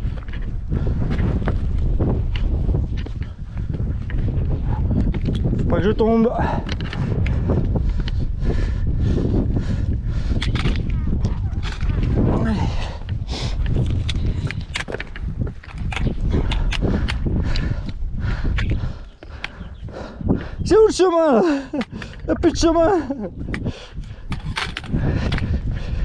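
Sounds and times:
trekking poles clicking on rock: 0.0 - 8.2, 10.1 - 19.9, 21.4 - 26.0
wind buffeting microphone: 0.0 - 26.0.

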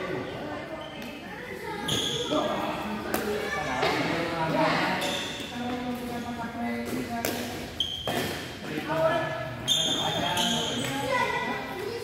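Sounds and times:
people talking and calling: 0.0 - 12.0
rackets hitting shuttlecock: 6.8 - 8.6.

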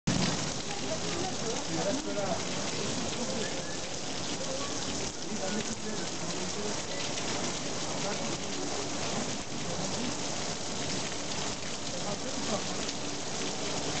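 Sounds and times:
heavy rain on stone: 0.1 - 14.0.

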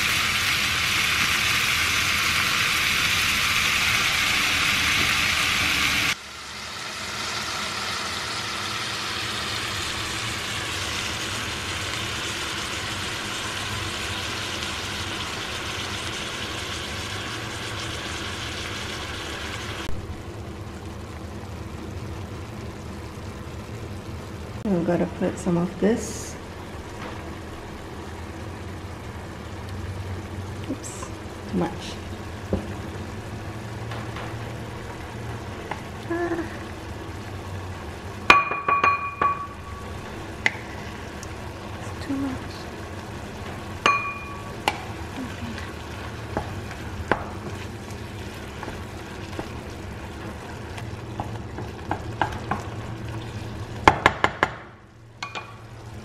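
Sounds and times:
vegetables sizzling in a frying pan: 0.0 - 56.0
spatula knocking against pan: 38.3 - 39.5, 53.8 - 55.5.

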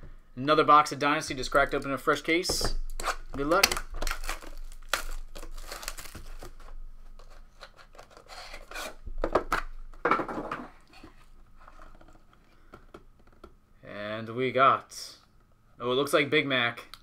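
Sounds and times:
plastic wrap crinkling and tearing: 2.9 - 9.0.

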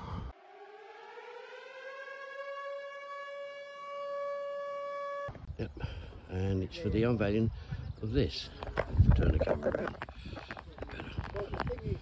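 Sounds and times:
siren-like droning tone: 0.0 - 5.3.

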